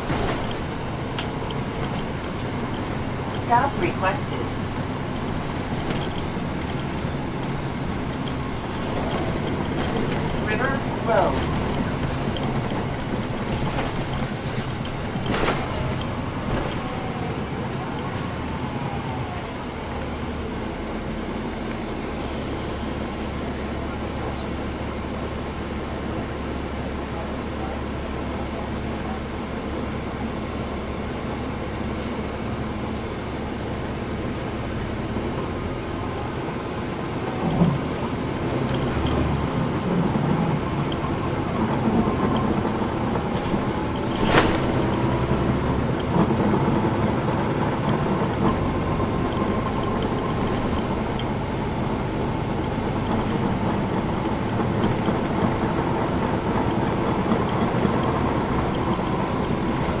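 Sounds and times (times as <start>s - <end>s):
bus diesel engine under load: 0.0s - 60.0s
tyre and road noise: 0.0s - 60.0s.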